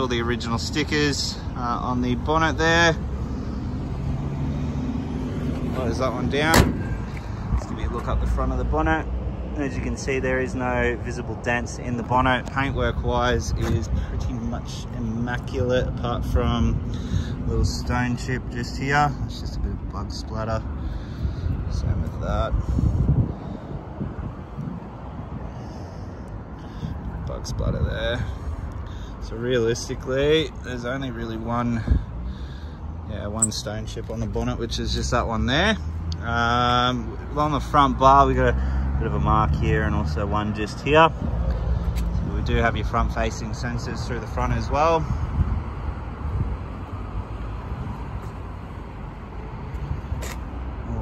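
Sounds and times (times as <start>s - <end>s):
wind buffeting microphone: 21.0s - 25.6s, 45.0s - 48.2s.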